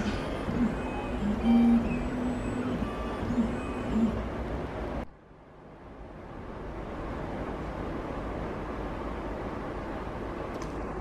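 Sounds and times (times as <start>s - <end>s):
stepper motors whining: 0.0s - 5.0s.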